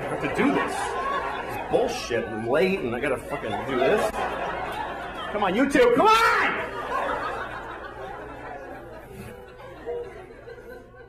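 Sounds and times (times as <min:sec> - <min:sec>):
audience laughing and murmuring: 0:00.0 - 0:11.0.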